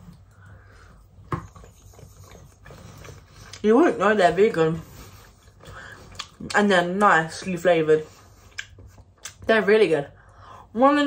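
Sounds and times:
person chewing marshmallow: 0:05.5 - 0:06.6, 0:08.5 - 0:09.4.

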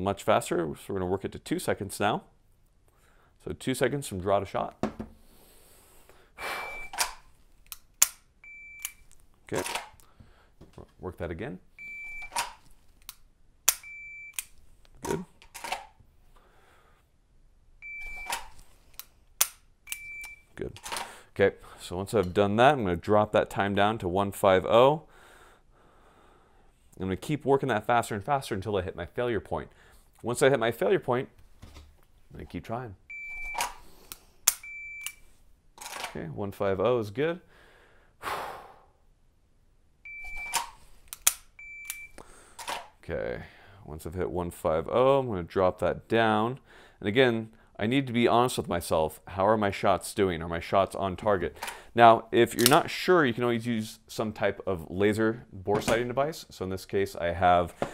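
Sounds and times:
shot timer beep: 0:06.6 - 0:07.0, 0:17.8 - 0:18.4, 0:19.9 - 0:20.4, 0:33.1 - 0:33.7, 0:40.1 - 0:40.6, 0:41.6 - 0:42.2
pistol trigger dry-fire click: 0:07.0 - 0:09.0, 0:12.4 - 0:14.6, 0:19.0 - 0:20.4, 0:40.5 - 0:42.0
shot timer beeping: 0:19.9 - 0:20.4, 0:40.1 - 0:40.7
draw clicks: 0:40.2 - 0:42.9.

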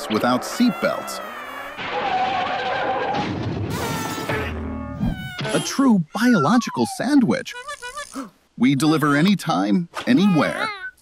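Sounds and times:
cartoon yell: 0:03.8 - 0:08.3.

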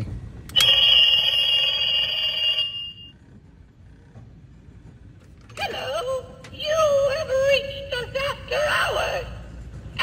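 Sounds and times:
high electronic ringing tone: 0:00.6 - 0:03.2.

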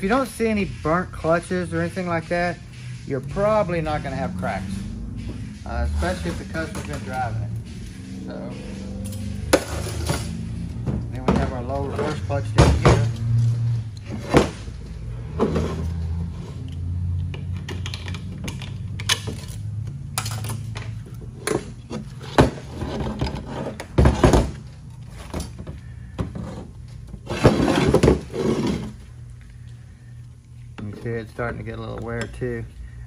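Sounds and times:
low steady hum: 0:00.0 - 0:33.0.

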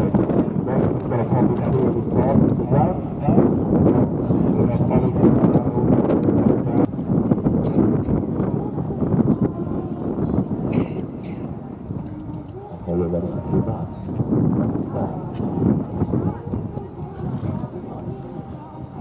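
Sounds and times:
indistinct voices talking: 0:00.0 - 0:06.9, 0:07.6 - 0:19.0.

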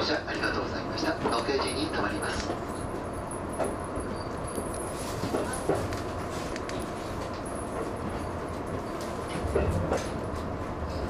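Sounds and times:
train running heard from inside: 0:00.0 - 0:11.0.

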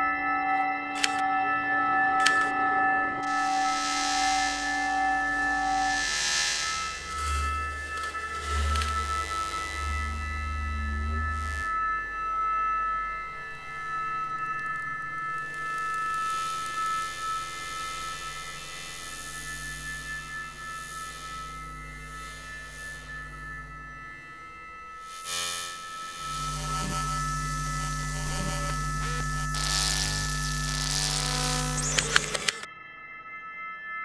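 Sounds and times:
low electronic drone: 0:00.0 - 0:32.8
steady high electronic tones: 0:02.1 - 0:32.7
hiss: 0:03.3 - 0:09.6.

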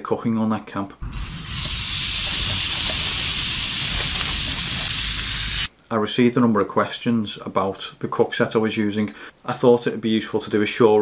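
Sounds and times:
steak sizzling in frying pan: 0:01.2 - 0:05.7.

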